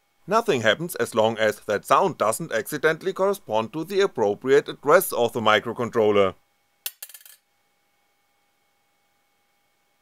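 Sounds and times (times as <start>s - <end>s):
coin clattering on a tabletop: 6.8s - 7.4s.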